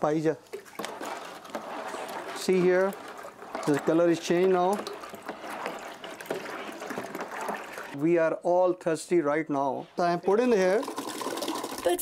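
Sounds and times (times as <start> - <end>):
milk pouring from jug: 0.5 - 8.0, 10.3 - 12.0
stirring clatter against plastic cooler: 0.5 - 8.0.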